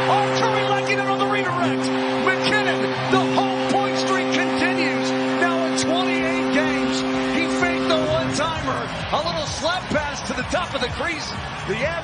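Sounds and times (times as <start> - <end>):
goal horn chord: 0.0 - 9.8
crowd cheering: 0.0 - 12.0.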